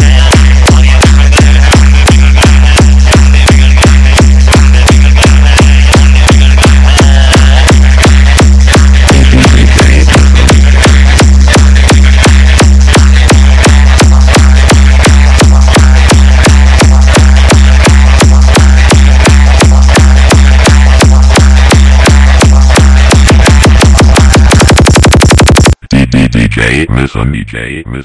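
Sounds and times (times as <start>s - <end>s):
deep bass tone: 0.0s - 28.0s.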